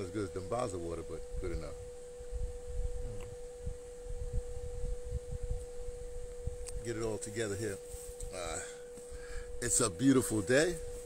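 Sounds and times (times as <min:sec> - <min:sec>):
faint pure tone: 0:00.0 - 0:11.0
wind buffeting microphone: 0:00.2 - 0:11.0.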